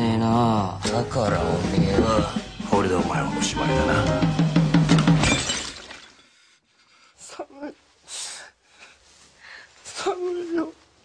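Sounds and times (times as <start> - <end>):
shattering crash: 4.9 - 6.2.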